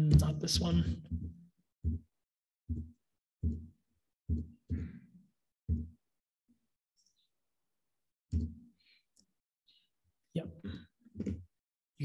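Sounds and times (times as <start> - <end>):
dull low key thumps: 0.0 - 2.1, 2.7 - 3.7, 4.3 - 5.0, 5.7 - 6.0.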